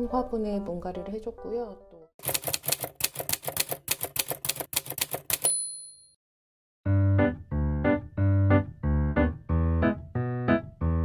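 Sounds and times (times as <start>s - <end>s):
typewriter keystroke clicks: 2.2s - 5.6s
carriage-return bell ding: 5.3s - 6.2s.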